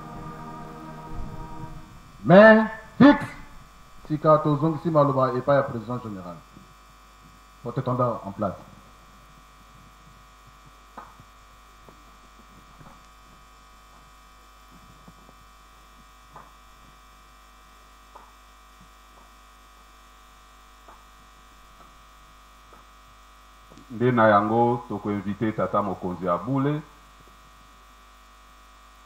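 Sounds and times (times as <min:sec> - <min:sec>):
electrical mains hum: 0:00.0 - 0:29.0.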